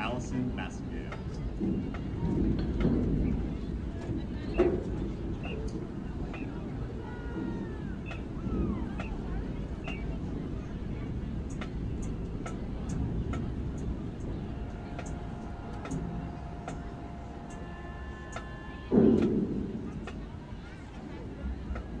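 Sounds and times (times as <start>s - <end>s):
crowd chatter: 0.0s - 22.0s
faint steady held notes: 0.0s - 22.0s.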